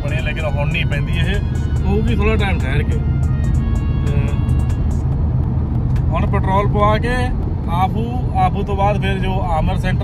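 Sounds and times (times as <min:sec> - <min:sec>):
background music: 0:00.0 - 0:06.2
car cabin road and engine rumble: 0:00.0 - 0:10.0.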